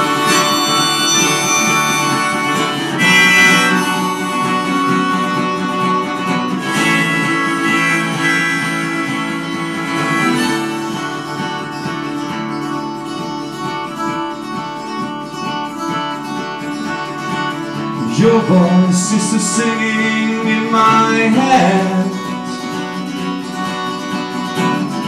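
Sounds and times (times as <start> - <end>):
harmonica solo: 0.0 - 14.2
fingerstyle acoustic guitar: 0.0 - 25.0.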